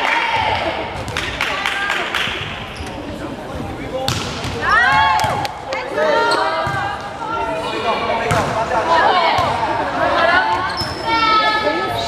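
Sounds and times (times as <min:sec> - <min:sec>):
girls talking and calling out: 0:08.8 - 0:12.0.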